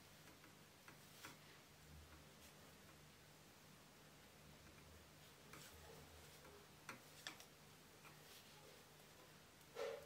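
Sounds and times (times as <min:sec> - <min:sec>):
knitting needles clicking: 0:00.1 - 0:01.4, 0:06.4 - 0:08.3.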